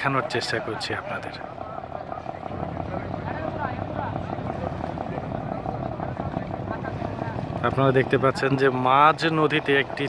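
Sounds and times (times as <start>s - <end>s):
low engine-like hum: 0.0s - 10.0s
people talking indistinctly: 0.0s - 10.0s.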